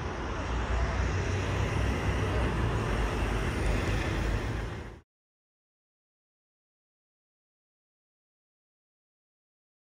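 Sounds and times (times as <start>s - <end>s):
airplane passing overhead: 0.0s - 5.0s.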